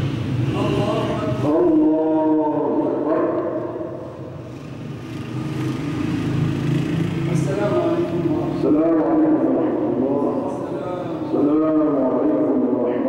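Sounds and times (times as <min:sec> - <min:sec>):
man chanting a prayer: 0:00.5 - 0:03.9, 0:07.2 - 0:13.0.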